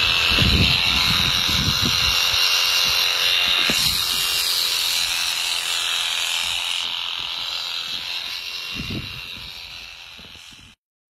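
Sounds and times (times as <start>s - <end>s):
electric sheep shears buzzing: 0.0s - 10.8s.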